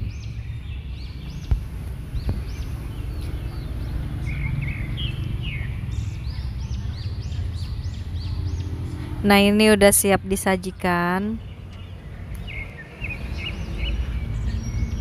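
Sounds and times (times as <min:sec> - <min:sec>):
birds chirping: 0:00.0 - 0:15.0.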